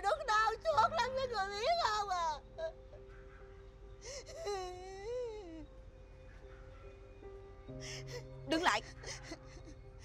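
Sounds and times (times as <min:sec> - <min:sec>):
soft background music: 0:00.0 - 0:10.0
woman crying wail: 0:04.1 - 0:05.7.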